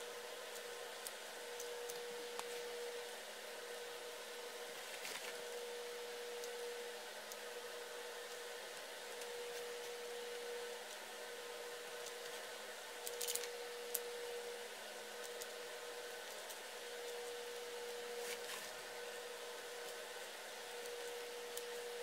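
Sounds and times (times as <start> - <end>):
workshop background hum: 0.0 - 22.0.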